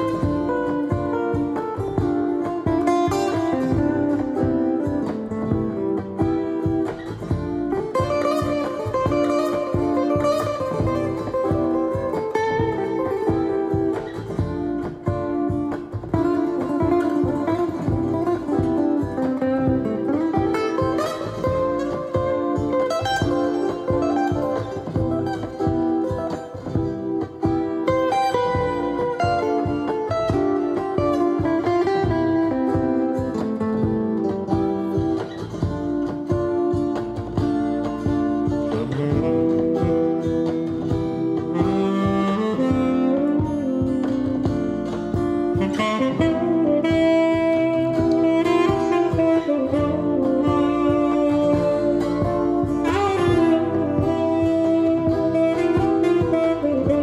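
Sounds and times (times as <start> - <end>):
jazz guitar solo: 0.0 - 57.0.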